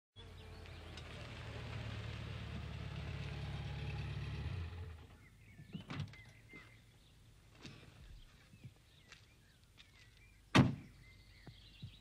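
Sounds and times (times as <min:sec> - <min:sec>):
birds chirping: 0:00.2 - 0:01.3, 0:04.8 - 0:12.0.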